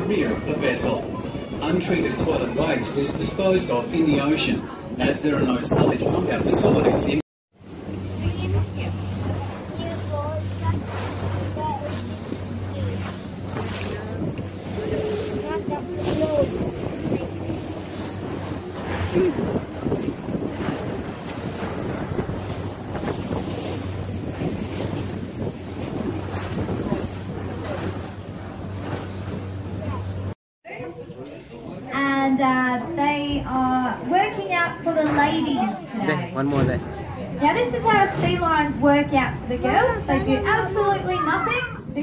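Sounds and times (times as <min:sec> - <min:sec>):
wind buffeting microphone: 0:00.0 - 0:30.4
boat engine droning: 0:00.0 - 0:42.0
water rushing past hull: 0:00.0 - 0:42.0.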